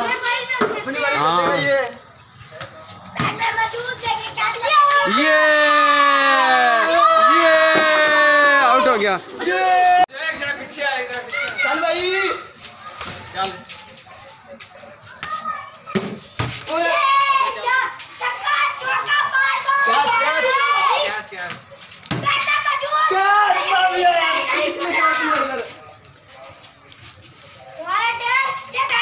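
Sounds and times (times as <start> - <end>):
children shouting during play: 3.3 - 10.1, 11.2 - 13.4, 16.7 - 21.2, 22.2 - 25.7.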